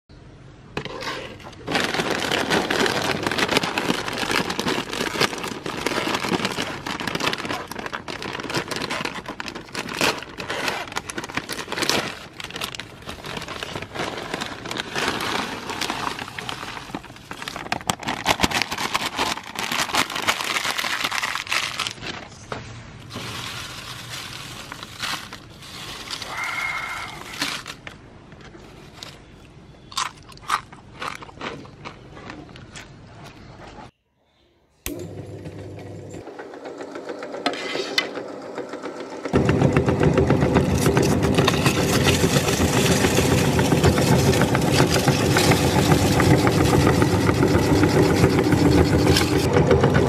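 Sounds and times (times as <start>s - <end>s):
tortilla chips crunching: 1.6s - 22.2s, 23.1s - 28.0s, 28.7s - 32.9s, 40.6s - 49.5s.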